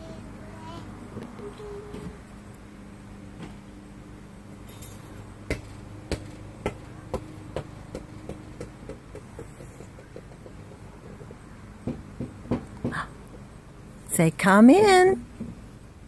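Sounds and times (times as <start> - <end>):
ball bouncing: 5.4 - 13.4
knocks: 5.5 - 13.4.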